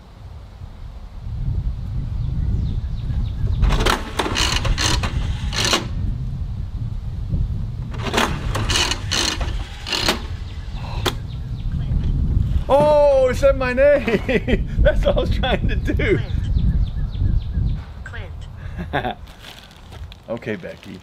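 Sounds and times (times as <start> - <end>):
toy slot machine whirring: 3.7 - 6.0, 8.0 - 10.5.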